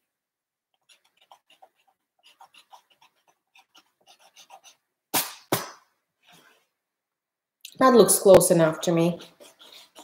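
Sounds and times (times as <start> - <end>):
pencil strokes on canvas: 0.7 - 4.9, 9.0 - 10.0.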